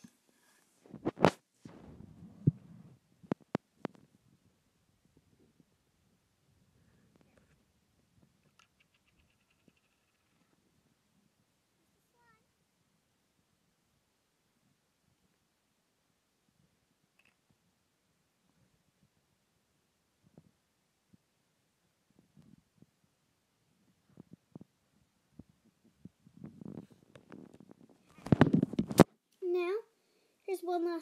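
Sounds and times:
faint high-pitched vocal call: 0:11.8 - 0:12.5.

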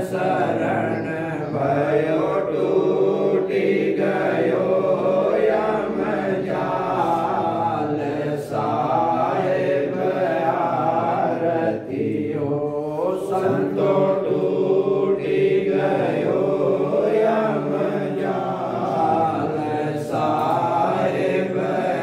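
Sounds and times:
voices chanting devotional song: 0:00.0 - 0:22.0.

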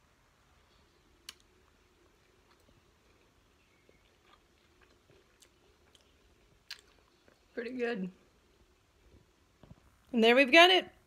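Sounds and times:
faint chewing: 0:00.6 - 0:09.9.

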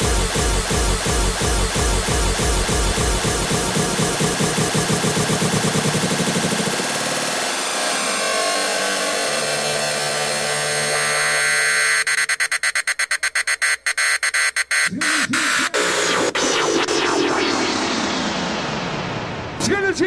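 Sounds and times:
hardcore electronic dance music: 0:00.0 - 0:07.7, 0:10.9 - 0:18.2.

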